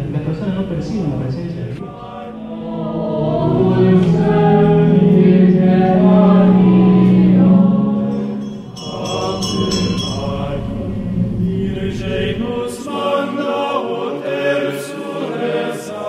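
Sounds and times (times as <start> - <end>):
choir singing a hymn: 1.7 - 16.0
bright high ringing: 4.8 - 12.8.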